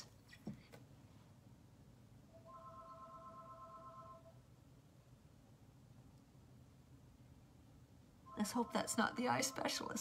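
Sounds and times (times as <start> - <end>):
telephone ringing faintly: 2.3 - 4.4, 8.3 - 10.0.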